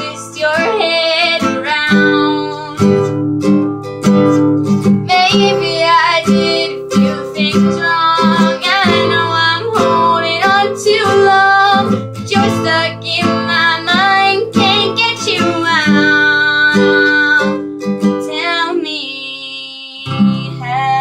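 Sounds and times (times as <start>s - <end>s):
woman singing: 0.0s - 3.1s, 5.0s - 21.0s
strummed acoustic guitar: 0.0s - 21.0s.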